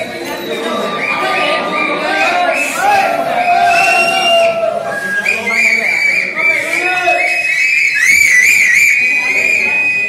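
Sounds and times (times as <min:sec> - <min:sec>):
wavering high-pitched whistling: 0:00.0 - 0:10.0.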